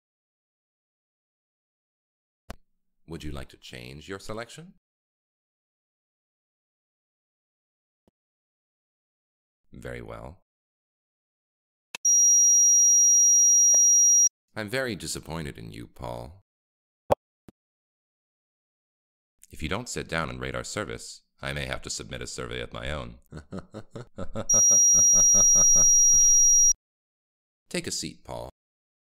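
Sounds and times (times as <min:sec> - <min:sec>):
high-pitched electronic sine tone: 0:12.1 - 0:14.3, 0:24.5 - 0:26.8.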